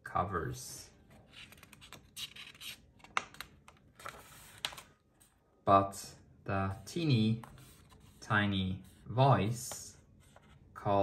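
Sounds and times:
paper page turning: 0:01.2 - 0:05.3.

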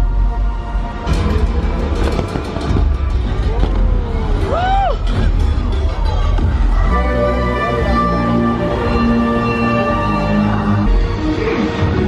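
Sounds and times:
soundtrack over loudspeakers: 0:00.0 - 0:12.0.

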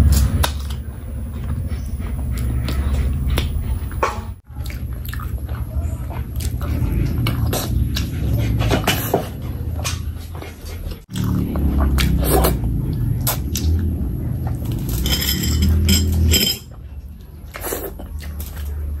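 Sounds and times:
wet chewing and lip-smacking: 0:04.4 - 0:09.0, 0:09.9 - 0:14.6, 0:17.1 - 0:19.0.

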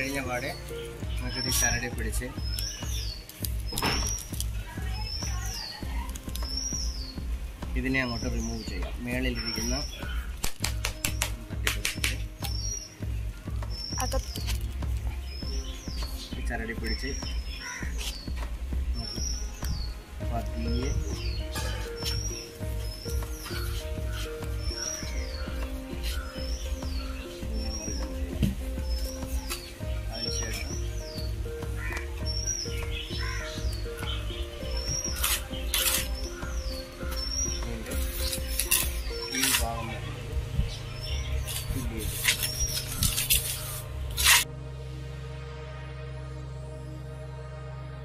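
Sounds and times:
background music with steady beat: 0:00.0 - 0:48.0.

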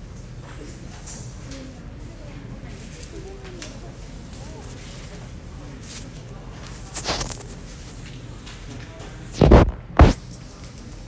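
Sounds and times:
faint background voices: 0:00.4 - 0:11.0
steady low hum: 0:05.3 - 0:08.5, 0:09.2 - 0:10.3.

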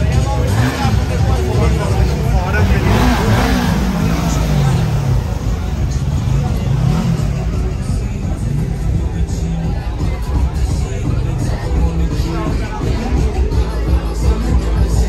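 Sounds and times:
bar music: 0:00.0 - 0:15.0
crowd chatter: 0:00.0 - 0:15.0
motorcycle engine revving: 0:00.0 - 0:15.0.

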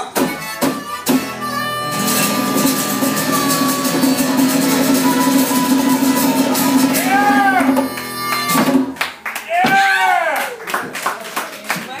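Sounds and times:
person cheering: 0:03.6 - 0:08.3, 0:09.4 - 0:10.7
small audience clapping: 0:05.5 - 0:12.0.

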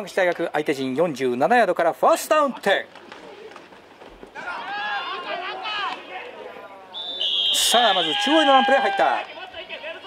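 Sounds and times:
faint outdoor ambience: 0:00.0 - 0:10.0.

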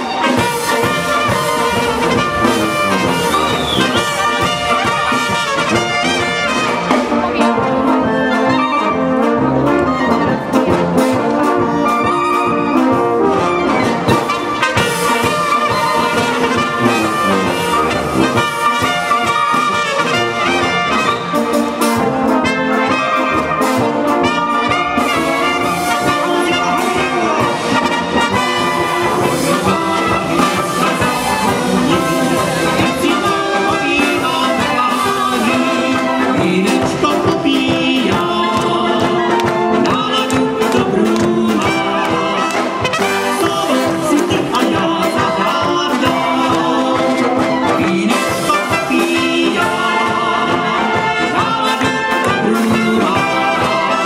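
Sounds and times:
baritone horns and tuba: 0:00.0 - 0:54.0
clarinets and trumpets melody: 0:00.0 - 0:54.0
folk brass band playing: 0:00.0 - 0:54.0.

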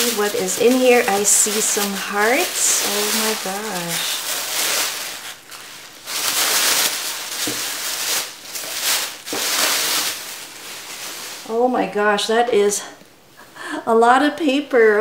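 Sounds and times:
plastic bag rustling: 0:00.0 - 0:12.3.

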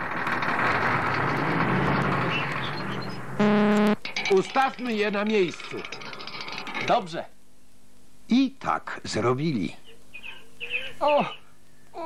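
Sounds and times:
cartoon engine running: 0:03.4 - 0:04.0
horn honk: 0:03.4 - 0:04.0.

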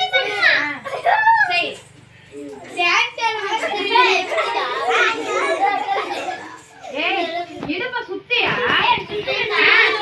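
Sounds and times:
young children calling out and talking: 0:00.0 - 0:07.7, 0:08.4 - 0:10.0.

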